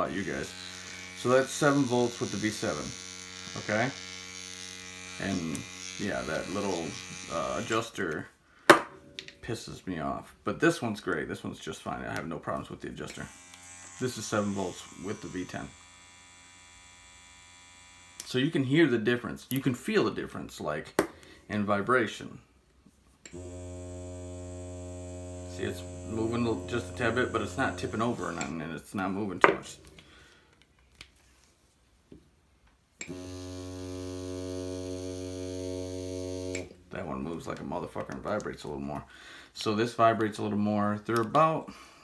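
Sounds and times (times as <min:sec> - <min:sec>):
tattoo pen motor humming: 0:00.0 - 0:07.9, 0:13.1 - 0:18.4, 0:23.3 - 0:28.6, 0:33.0 - 0:36.8.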